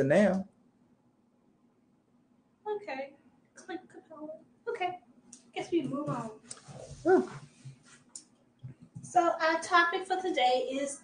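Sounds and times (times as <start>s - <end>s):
person exclaiming huh: 7.0s - 7.4s.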